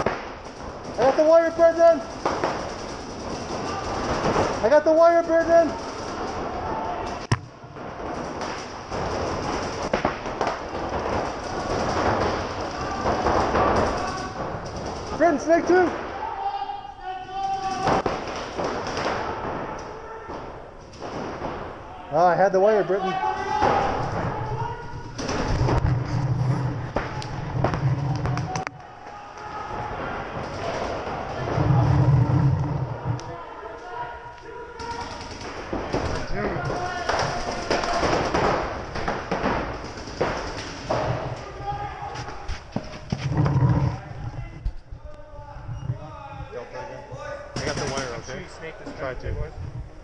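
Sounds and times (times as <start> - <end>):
heavy thumps: 7.2 - 16.1, 23.5 - 28.8, 29.7 - 33.3, 35.6 - 45.1.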